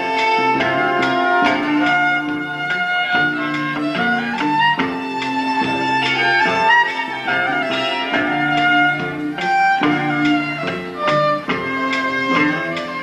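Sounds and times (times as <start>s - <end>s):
fiddle melody: 0.0s - 13.0s
strummed acoustic guitar: 0.0s - 13.0s.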